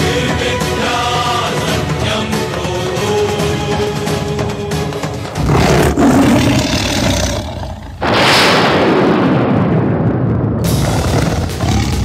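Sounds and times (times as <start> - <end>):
tiger roaring: 5.4 - 8.1, 10.7 - 12.0.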